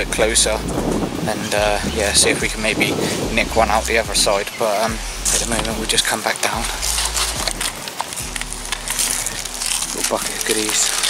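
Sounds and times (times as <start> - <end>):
camera handling noise: 6.6 - 10.1.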